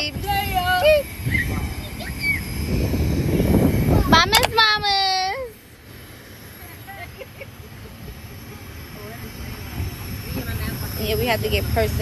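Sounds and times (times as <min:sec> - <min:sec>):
even hiss: 0:00.0 - 0:12.0.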